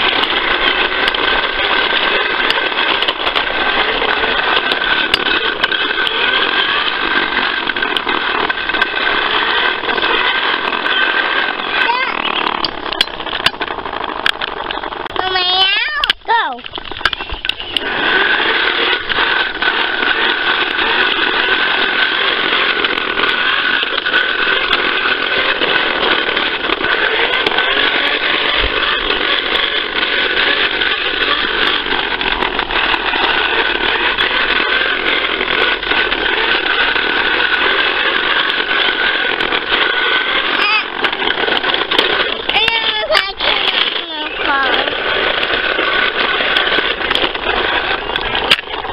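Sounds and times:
toy lawnmower buzzing: 0.0 - 48.9
clicks: 16.0 - 48.9.

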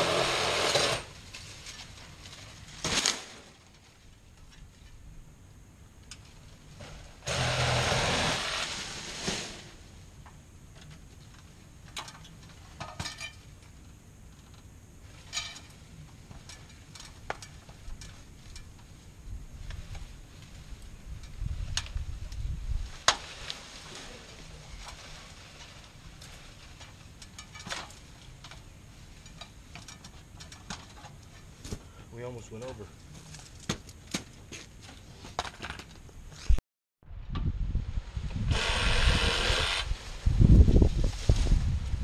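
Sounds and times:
palm fronds rustling: 0.0 - 5.0, 6.2 - 36.6, 38.0 - 42.0
rumbling rustle: 0.0 - 42.0.

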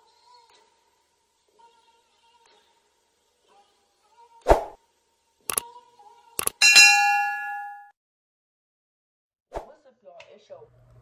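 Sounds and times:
sharp clicks: 6.4 - 6.6
notification bell ding: 6.6 - 7.9.

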